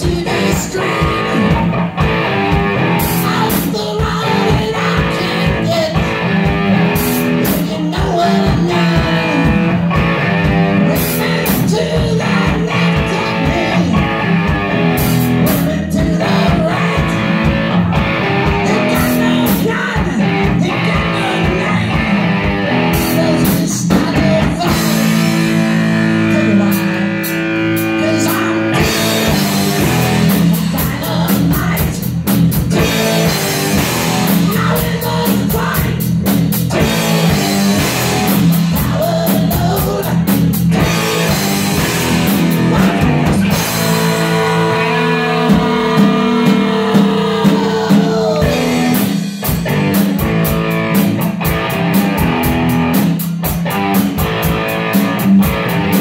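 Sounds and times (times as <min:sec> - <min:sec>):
person singing into microphone: 0:00.0 - 0:01.6, 0:02.8 - 0:09.8, 0:10.5 - 0:17.5, 0:18.4 - 0:32.1, 0:32.7 - 0:36.1, 0:36.7 - 0:49.3
drum kit: 0:00.0 - 0:56.0
electric guitars: 0:00.0 - 0:56.0.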